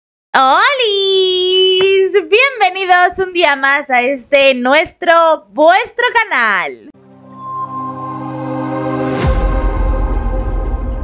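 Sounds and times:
woman calling out: 0.4s - 2.2s.

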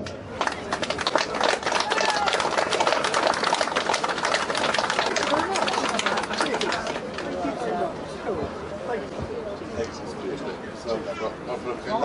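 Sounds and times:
crowd clapping: 0.0s - 7.7s
voices: 0.4s - 12.0s.

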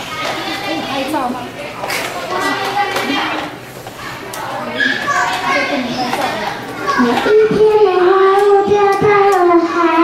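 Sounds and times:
children talking: 0.0s - 10.0s.

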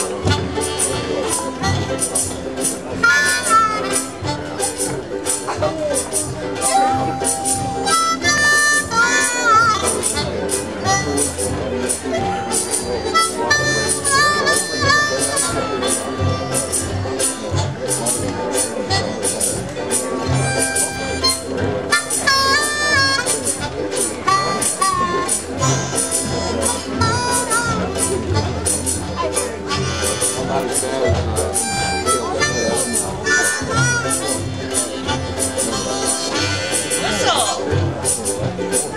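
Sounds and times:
acoustic string band playing blues: 0.0s - 38.9s
wind instrument lead: 0.0s - 38.9s.

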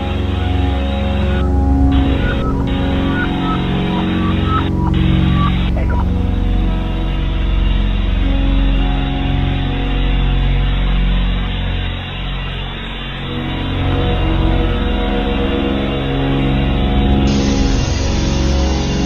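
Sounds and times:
ambient drone music: 0.0s - 19.0s
shortwave radio hiss: 1.3s - 6.1s, 17.3s - 19.0s
short high blips: 1.4s - 6.1s.

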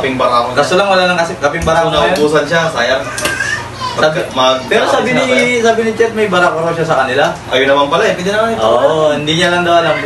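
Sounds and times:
men talking: 0.0s - 10.0s.

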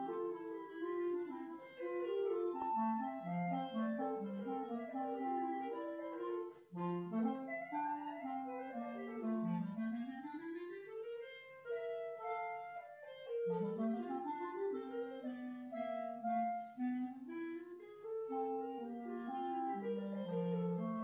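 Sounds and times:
clarinet duet: 0.0s - 21.0s.

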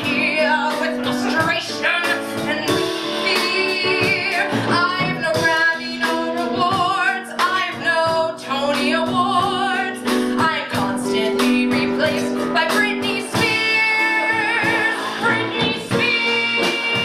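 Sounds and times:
instrumental accompaniment: 0.0s - 17.0s
woman singing into microphone: 0.0s - 17.0s.

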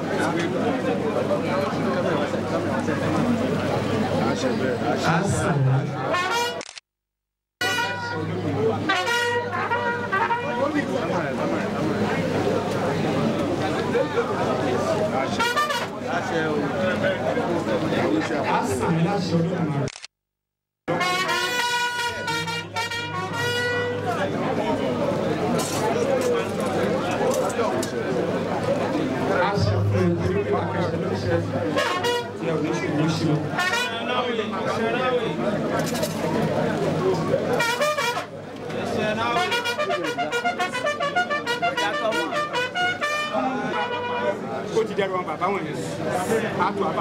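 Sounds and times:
room hubbub: 0.0s - 6.8s, 7.6s - 20.1s, 20.9s - 47.0s
man speaking into microphone: 5.0s - 6.1s, 29.2s - 33.6s
trumpet holding a note: 6.1s - 6.6s, 7.6s - 10.8s, 20.9s - 24.2s, 31.5s - 32.6s, 39.4s - 44.4s
voices: 21.0s - 47.0s.

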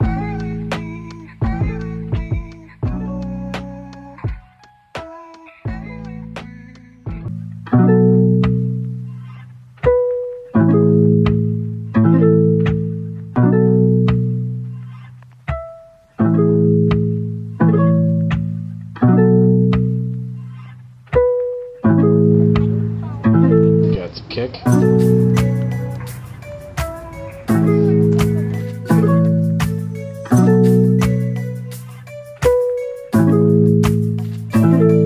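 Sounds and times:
plucked-string instrumental music: 0.0s - 24.0s, 24.7s - 35.0s.

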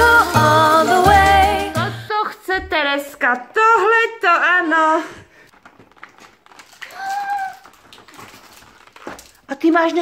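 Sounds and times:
cardboard packets clicking: 5.5s - 10.0s.

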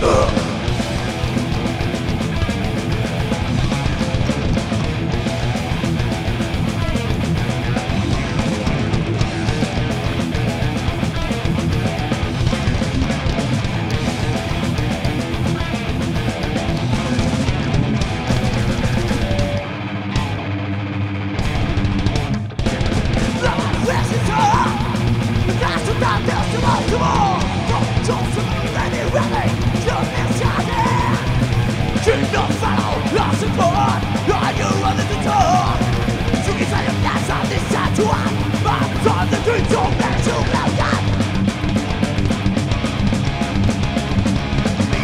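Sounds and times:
distorted electric guitars: 0.0s - 45.0s
drums: 0.0s - 45.0s.

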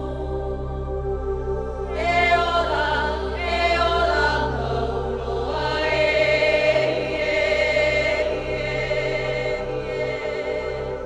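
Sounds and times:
low sustained accompaniment: 0.0s - 11.0s.

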